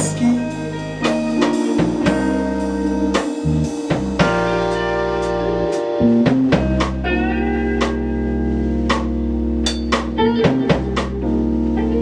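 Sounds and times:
drum and cymbal hits: 0.0s - 7.1s, 8.9s - 11.2s
electric guitars: 0.0s - 12.0s
keyboard chords: 0.0s - 12.0s.

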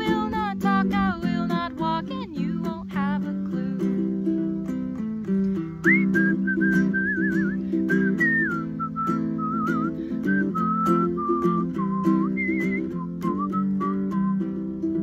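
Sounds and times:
strummed ukulele chords: 0.0s - 15.0s
person whistling a melody: 5.3s - 15.0s.

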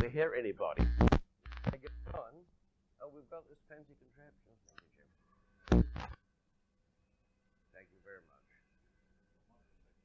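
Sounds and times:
man speaking: 1.7s - 5.1s.

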